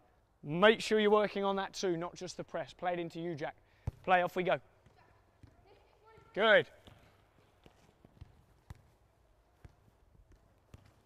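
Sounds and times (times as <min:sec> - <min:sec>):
football being kicked: 0:03.8 - 0:04.1, 0:06.2 - 0:09.0, 0:09.6 - 0:11.0.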